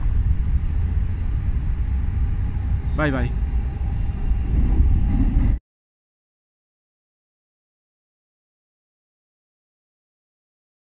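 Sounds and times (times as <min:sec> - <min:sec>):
low outdoor rumble: 0:00.0 - 0:05.6.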